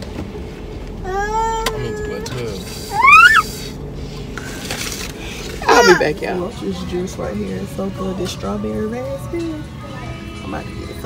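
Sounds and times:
car cabin hum: 0:00.0 - 0:03.7
high-pitched vocal squeal: 0:02.8 - 0:03.6.

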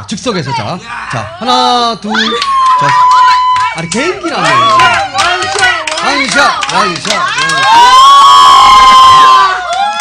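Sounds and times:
high-pitched cheering shout: 0:02.1 - 0:10.0.

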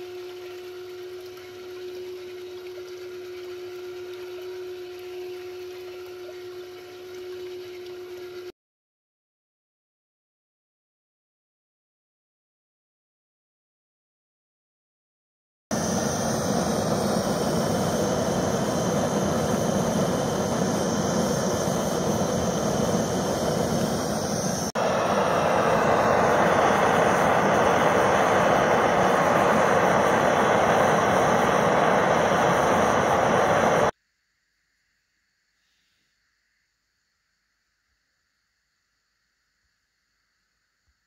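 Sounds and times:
gas torch flame burning: 0:15.7 - 0:34.0.

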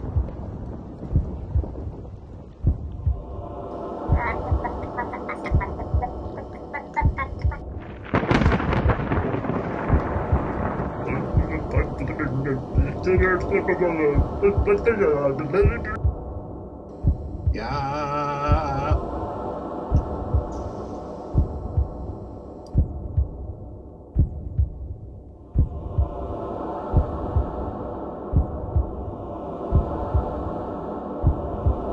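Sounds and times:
heartbeat double thumps: 0:00.0 - 0:03.4, 0:04.1 - 0:19.1, 0:19.9 - 0:20.7, 0:21.4 - 0:26.2, 0:26.9 - 0:27.6, 0:28.3 - 0:29.1, 0:29.7 - 0:30.4, 0:31.2 - 0:31.9
loud crackling rumble: 0:00.0 - 0:16.3
low steady hum: 0:00.0 - 0:31.9.

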